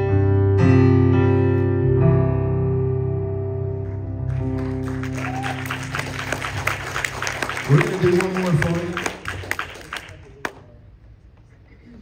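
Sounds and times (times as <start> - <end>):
scattered hand claps: 4.3 - 10.7.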